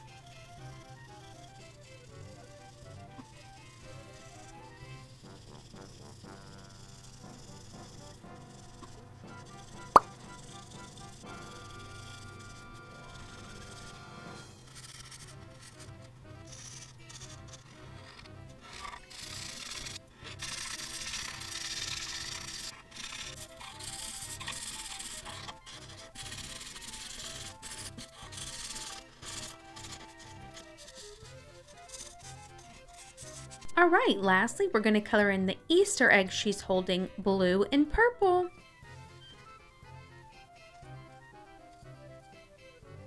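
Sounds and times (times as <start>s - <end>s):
soft background music: 0.0s - 43.0s
marker rubbing on paper: 0.2s - 14.0s, 14.7s - 15.9s, 16.5s - 33.8s.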